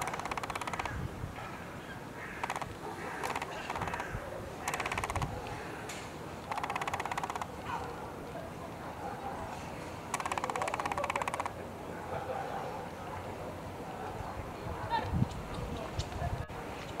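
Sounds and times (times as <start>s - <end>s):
bird harsh rattling calls: 0.0s - 5.8s, 6.4s - 7.8s, 10.1s - 11.6s.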